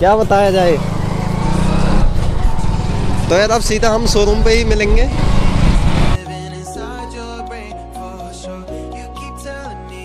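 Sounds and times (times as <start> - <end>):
vehicle engine rumble: 0.0 - 6.2
wind buffeting microphone: 0.8 - 6.2.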